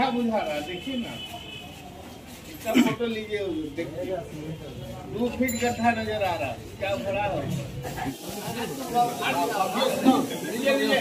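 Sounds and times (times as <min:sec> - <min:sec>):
people talking in a crowd: 0:00.0 - 0:11.0
steady hiss: 0:08.0 - 0:11.0.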